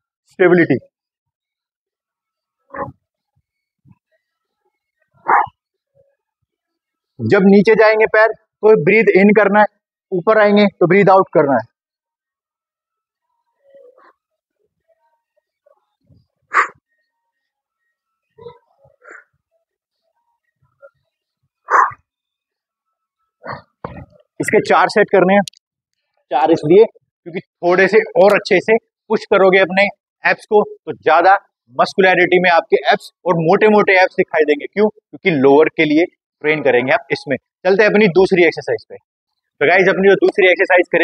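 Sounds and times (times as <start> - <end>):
forceful exhaling huffs: 16.5 - 16.8.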